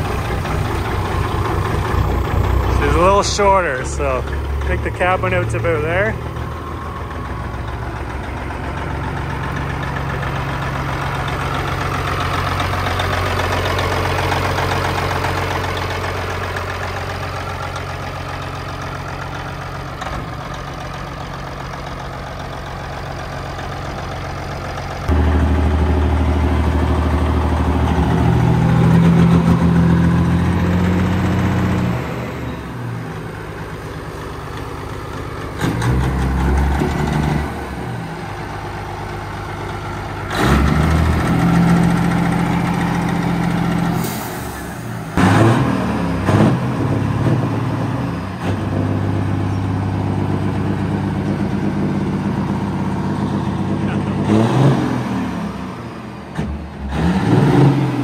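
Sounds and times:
diesel truck engine idling and revving: 0.0 - 58.0.

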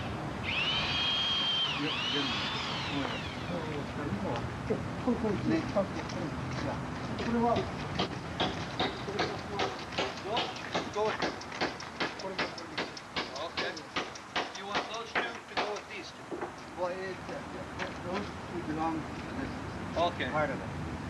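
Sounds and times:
voices: 1.5 - 20.7.

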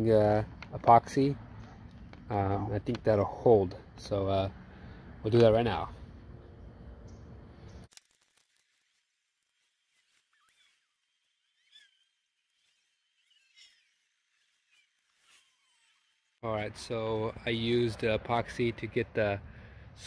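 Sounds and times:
faint outdoor background noise: 0.0 - 20.0.

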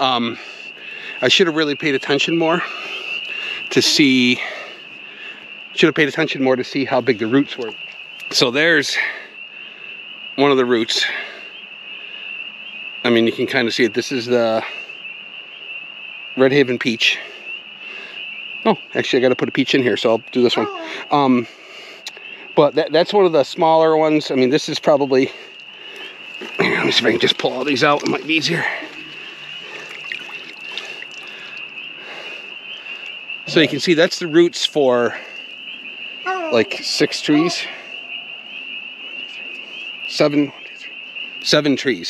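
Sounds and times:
night insects chirring: 0.0 - 42.0
high-pitched chorus of night creatures: 3.4 - 4.4, 18.7 - 21.5, 26.0 - 32.2, 33.4 - 35.1, 36.3 - 38.0
wet rustling and trickling water: 25.5 - 33.4.

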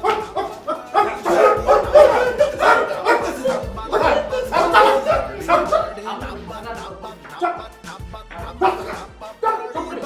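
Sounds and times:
background music: 0.0 - 10.0
men yelling and crying out: 0.0 - 10.0.

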